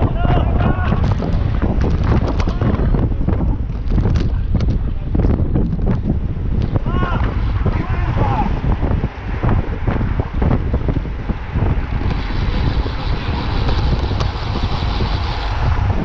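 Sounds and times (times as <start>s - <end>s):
riders' voices: 0.0s - 5.6s, 6.7s - 13.9s
wind buffeting microphone: 0.0s - 16.0s.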